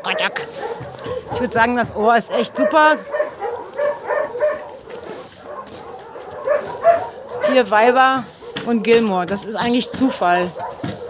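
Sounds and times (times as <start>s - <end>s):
dogs making high-pitched sounds: 2.3s - 8.6s.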